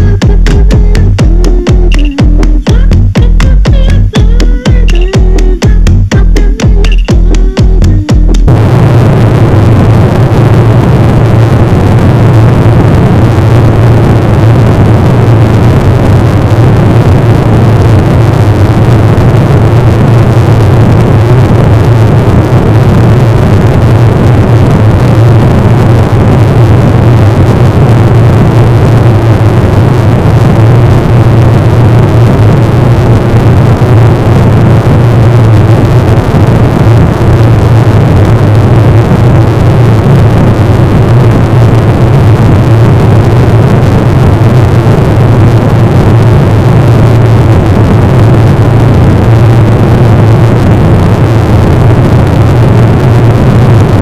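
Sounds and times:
dense noise with low hum: 0.0s - 54.0s.

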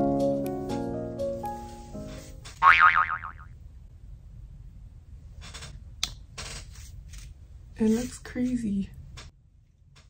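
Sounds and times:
keyboard background music: 0.0s - 2.4s
cartoon boing with warbling pitch: 2.6s - 3.5s.

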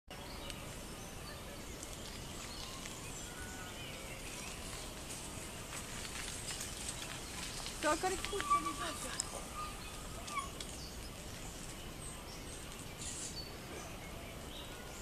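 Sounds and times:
outdoor background noise: 0.1s - 15.0s.

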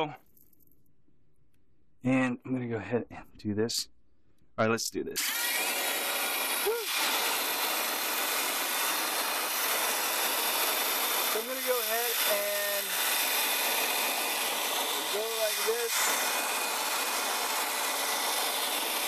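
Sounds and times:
vacuum hair clipper running: 5.2s - 19.0s.

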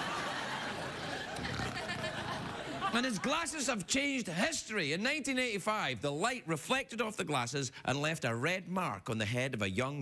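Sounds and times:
audience laughing: 0.0s - 3.8s.

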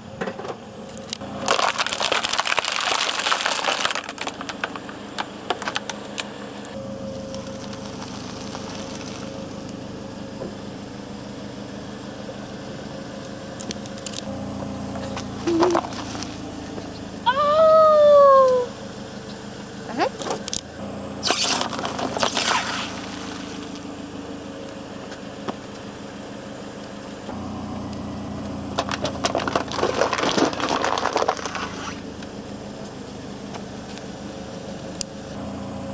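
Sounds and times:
car engine running: 0.0s - 35.9s
foil crinkling under tyre: 1.3s - 6.2s, 7.1s - 9.5s, 15.4s - 16.5s, 21.2s - 23.8s, 28.8s - 32.1s.

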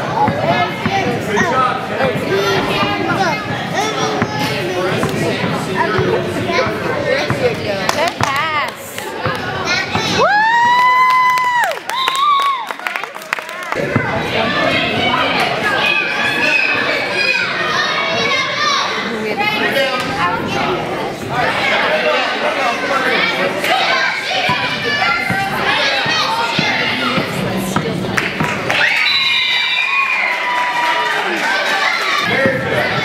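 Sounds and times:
children chattering and calling: 0.0s - 10.3s, 13.6s - 29.0s, 29.6s - 33.0s
crowd shouting: 28.7s - 33.0s.

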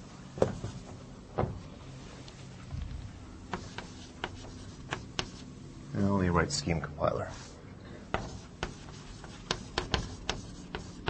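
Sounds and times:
writing taps on a board: 8.1s - 11.0s.

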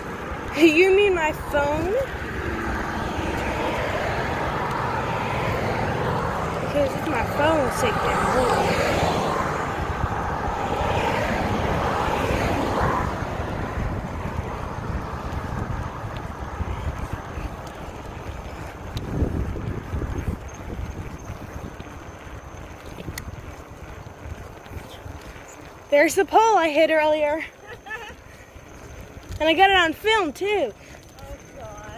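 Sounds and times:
wind buffeting microphone: 0.0s - 31.9s.

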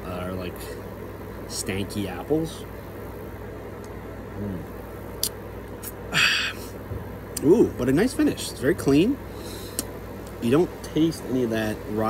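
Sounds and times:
steady low hum: 0.0s - 12.0s
man humming in throat: 4.4s - 4.7s, 6.1s - 6.7s.

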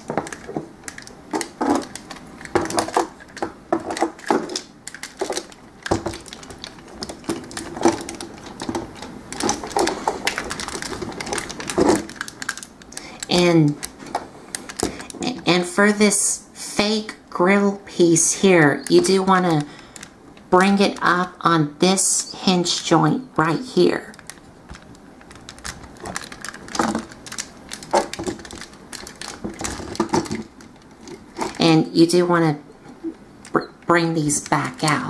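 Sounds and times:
plastic toy parts clicking: 0.0s - 15.2s, 18.8s - 21.3s, 24.1s - 31.6s.

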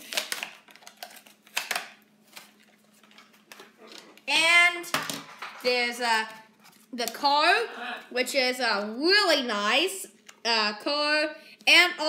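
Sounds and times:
packaging crackling and clicking: 0.0s - 4.3s.

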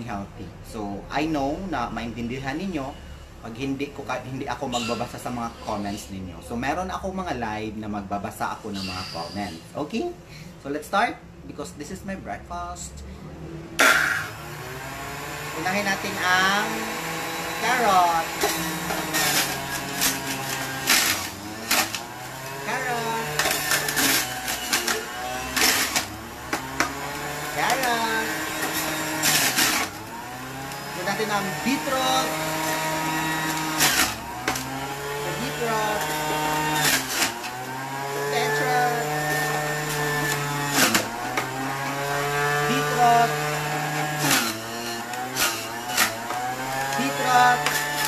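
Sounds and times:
juicer motor hum: 13.7s - 48.0s
juicer shredding carrots: 13.8s - 48.0s.

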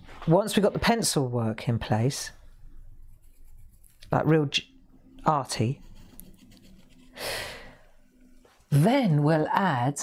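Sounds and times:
person's quick intake of breath: 7.2s - 7.8s.

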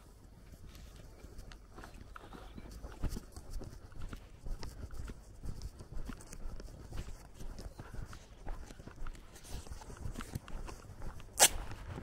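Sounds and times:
footsteps on dirt road: 0.0s - 12.0s.

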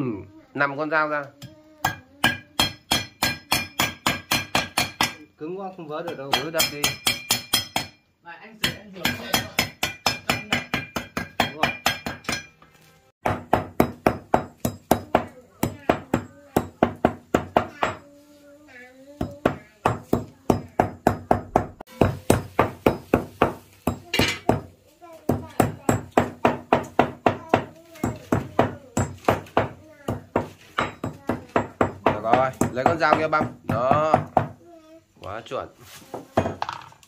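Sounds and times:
hammer knocking on wooden block: 8.6s - 12.5s, 13.2s - 18.0s, 19.2s - 24.7s, 25.3s - 34.6s.

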